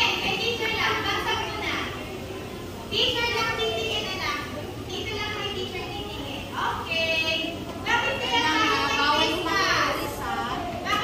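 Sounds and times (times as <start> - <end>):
young children chattering: 0.0 - 11.0.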